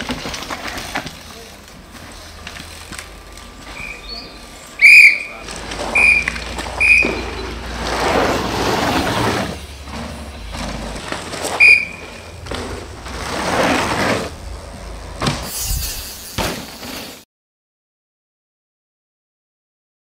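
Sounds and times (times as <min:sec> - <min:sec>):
mountain bike rolling past: 0:00.0 - 0:17.2
shrill whistle blasts: 0:03.8 - 0:07.7, 0:11.5 - 0:12.2.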